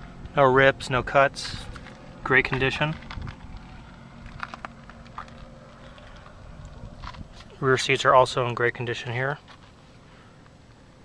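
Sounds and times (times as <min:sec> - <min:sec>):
faint hum: 0:00.0 - 0:11.0
low steady rumble: 0:00.0 - 0:11.0.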